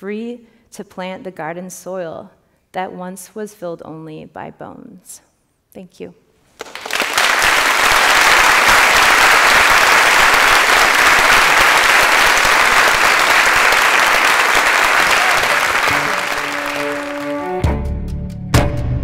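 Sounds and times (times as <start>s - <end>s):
audience applauding: 6.6s - 17.7s
music: 15.2s - 19.0s.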